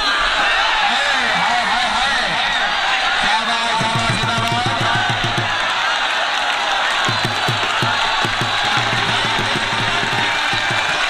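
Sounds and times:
crowd cheering: 0.0 - 11.0
drum beaten fast: 3.6 - 5.8, 6.9 - 11.0.

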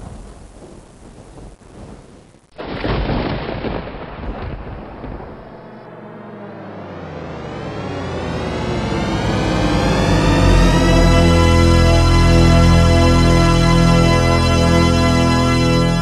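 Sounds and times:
thunder crack and rumble: 0.0 - 6.0
sustained music chord: 5.4 - 16.0.

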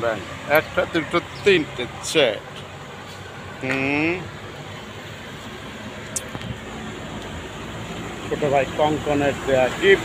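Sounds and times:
street traffic rush: 0.0 - 10.0.

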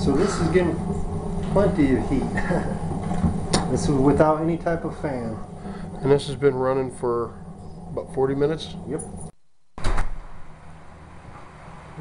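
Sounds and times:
wood fire rushing: 0.0 - 9.3
sharp knock: 9.8 - 10.2.

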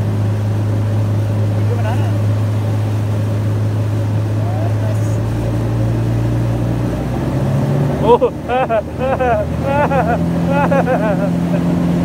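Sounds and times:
motorboat engine running: 0.0 - 12.0.

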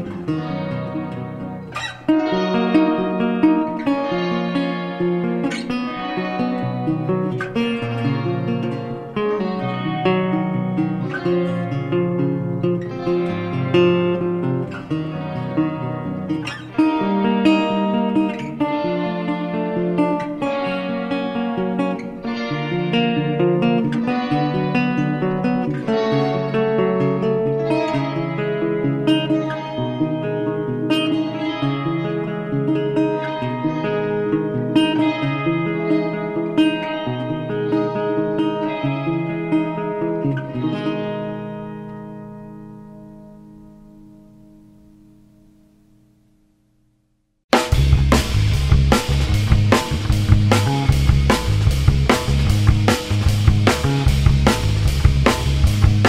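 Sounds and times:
picked guitar melody: 0.0 - 46.9, 47.5 - 56.0.

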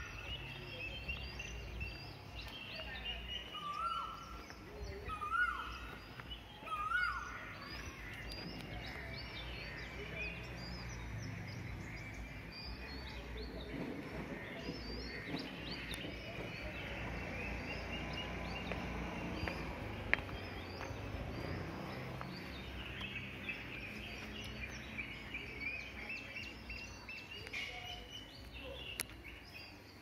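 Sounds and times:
birds chirping and calling: 0.0 - 30.0
low outdoor rumble: 4.2 - 29.3.

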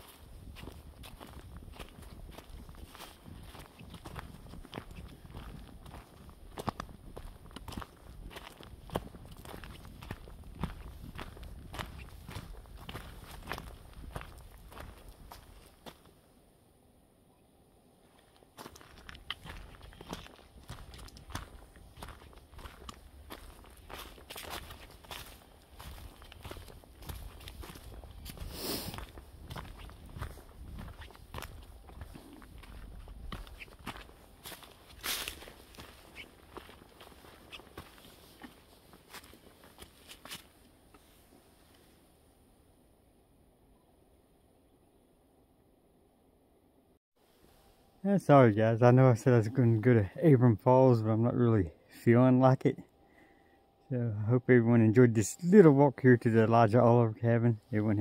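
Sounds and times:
footsteps on fallen leaves: 0.0 - 15.9, 18.2 - 41.2.

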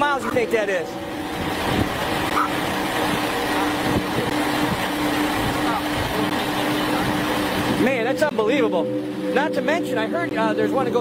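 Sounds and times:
road noise: 0.0 - 11.0
vehicle engine hum: 0.0 - 11.0.

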